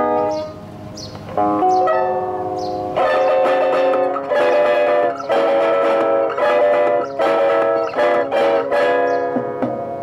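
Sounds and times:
classical guitar chords: 0:00.0 - 0:10.0.

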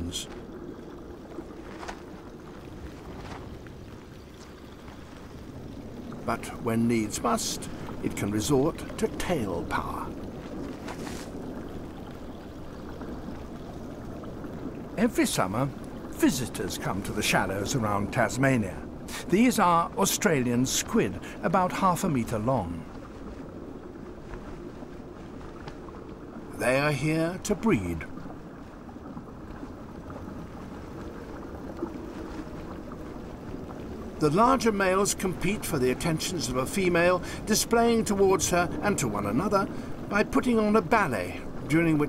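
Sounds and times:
underwater watery rush: 0:00.0 - 0:42.0.

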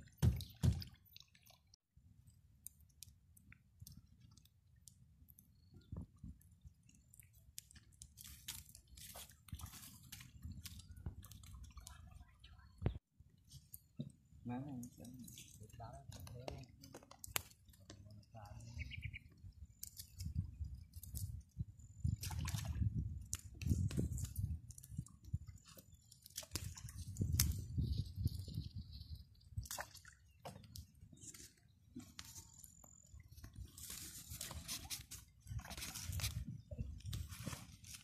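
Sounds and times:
embers clicking and crackling: 0:02.6 - 0:12.0, 0:14.7 - 0:18.7, 0:19.3 - 0:21.4, 0:23.2 - 0:28.3.

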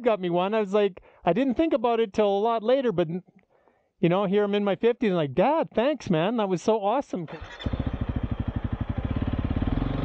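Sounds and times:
motorcycle engine accelerating: 0:07.3 - 0:10.0.

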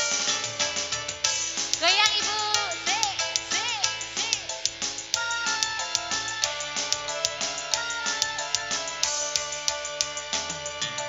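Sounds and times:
live band music over a pa: 0:00.0 - 0:11.0.

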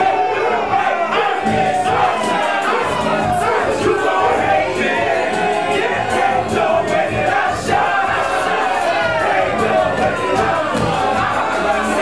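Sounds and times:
crowd yelling: 0:00.0 - 0:12.0
loud club music: 0:00.0 - 0:12.0.

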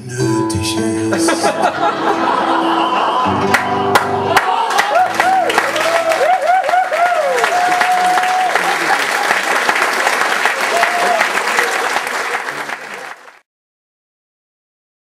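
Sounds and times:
audience applauding and cheering: 0:01.8 - 0:13.4
calls over clapping: 0:03.5 - 0:13.4.

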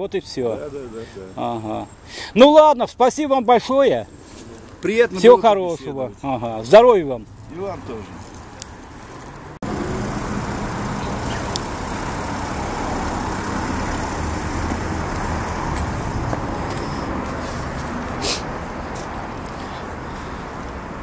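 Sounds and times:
city street traffic: 0:00.0 - 0:21.0.

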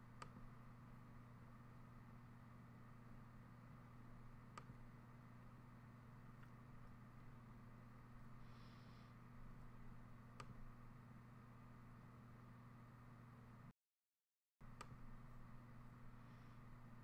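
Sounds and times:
steady low hum: 0:00.0 - 0:13.7, 0:14.6 - 0:17.0.

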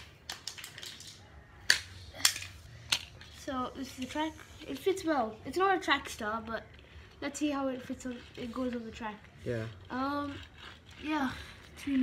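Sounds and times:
toys clicking on tile floor: 0:00.0 - 0:12.0.

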